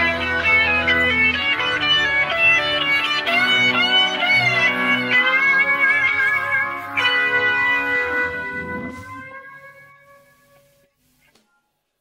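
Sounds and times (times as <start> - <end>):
electric guitar note ringing: 0.0 - 10.5.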